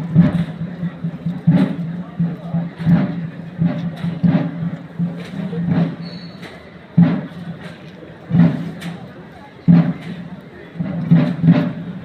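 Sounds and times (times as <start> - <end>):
crowd voices: 0.0 - 12.0
slow procession drum beats: 0.0 - 12.0.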